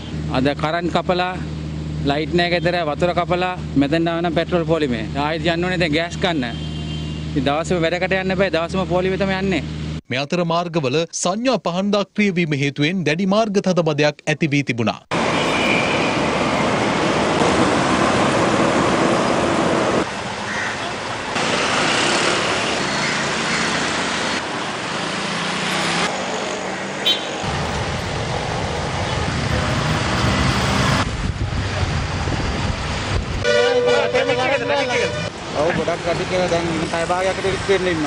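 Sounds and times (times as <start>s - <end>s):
cars trucks and motorcycles passing: 0.0s - 10.0s, 15.1s - 38.0s
vehicle horn tooting: 6.4s - 7.2s, 15.4s - 16.2s, 27.0s - 27.4s, 33.4s - 35.3s.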